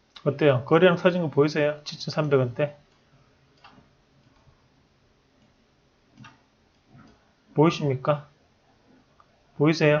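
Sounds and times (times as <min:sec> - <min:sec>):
computer mouse clicks: 0:02.9 - 0:04.5, 0:05.4 - 0:07.2.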